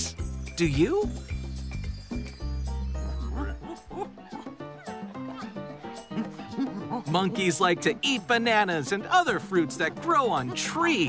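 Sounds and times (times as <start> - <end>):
light background music: 0.0 - 11.0
cartoon monkey calls: 3.2 - 7.1.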